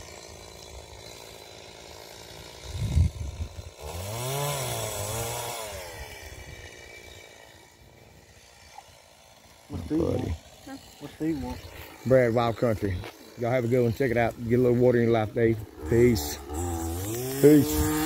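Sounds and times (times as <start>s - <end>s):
chainsaw revving: 0.0s - 18.0s.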